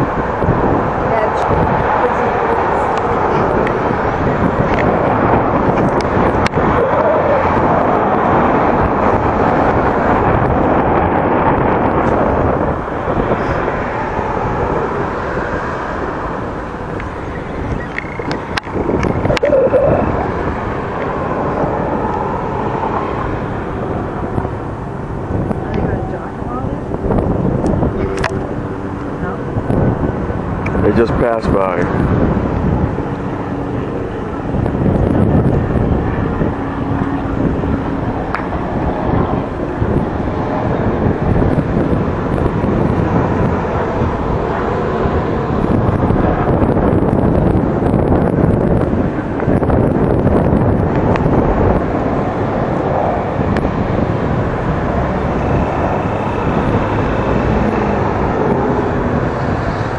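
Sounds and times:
distant motorboat engine drone: 0.0 - 59.9
background voices: 18.4 - 23.9.

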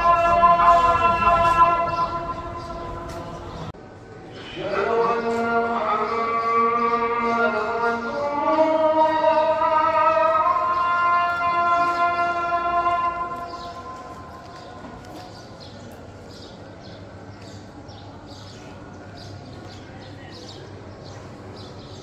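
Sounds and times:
man chanting held note: 0.0 - 3.6
open-air ambience: 0.0 - 22.0.

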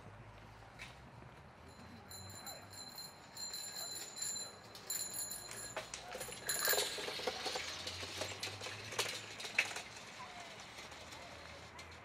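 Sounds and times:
high bell-like ringing: 1.6 - 7.0
rustle and clatter: 3.5 - 12.0.

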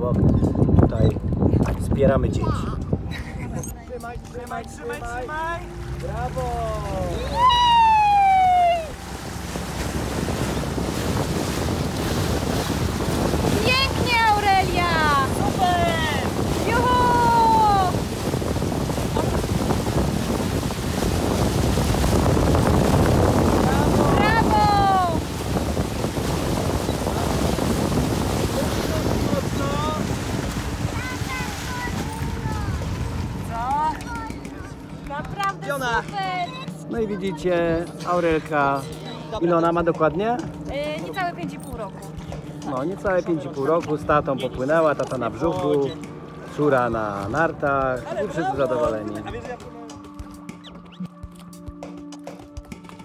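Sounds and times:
wind on microphone: 0.0 - 43.2
water rushing and splashing: 0.0 - 53.0.

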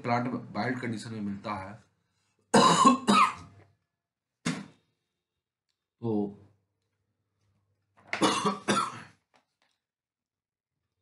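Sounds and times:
person coughing: 2.5 - 3.5, 8.2 - 9.2.

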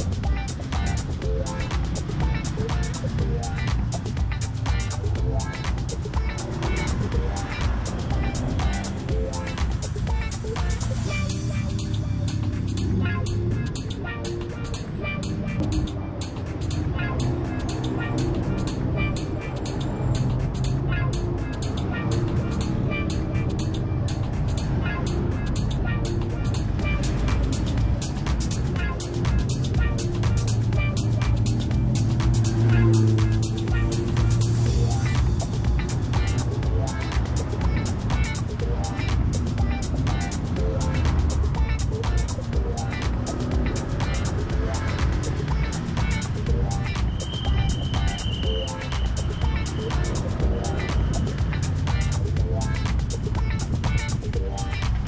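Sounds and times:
faint road traffic: 0.0 - 55.0
music with steady beat: 0.0 - 55.0.

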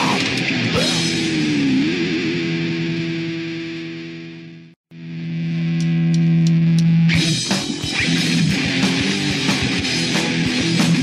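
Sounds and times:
punk band playing: 0.0 - 3.0, 7.1 - 11.0
distorted electric guitar chords: 0.0 - 11.0.

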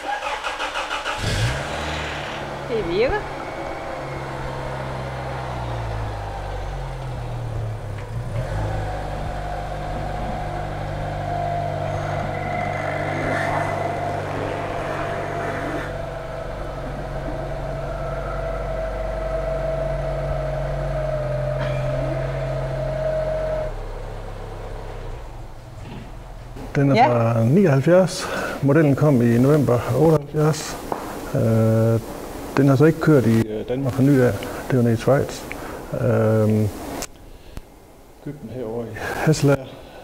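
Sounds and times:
car engine running: 0.0 - 28.0
thin high whine: 8.7 - 24.1.

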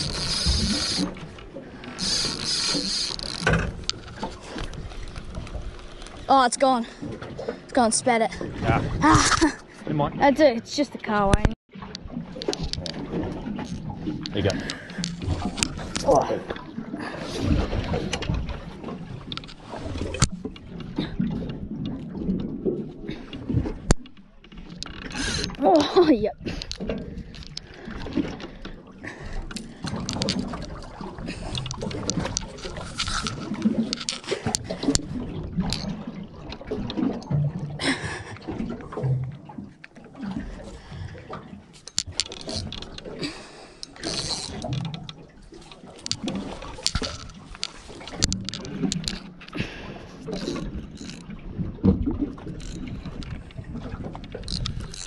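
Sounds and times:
wind: 0.0 - 55.0
handling knocks and clicks: 31.5 - 35.9, 41.8 - 43.1, 43.8 - 49.6, 54.1 - 55.0.

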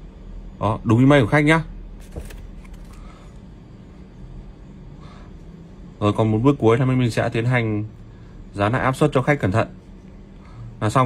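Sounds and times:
steady low hum: 0.0 - 11.0
paper and phone handling clicks: 2.0 - 3.1.

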